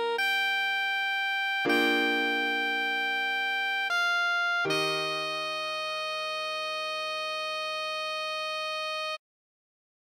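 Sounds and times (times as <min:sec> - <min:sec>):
sustained chord accompaniment: 0:00.0 - 0:07.4
saxophone long note: 0:01.6 - 0:06.4.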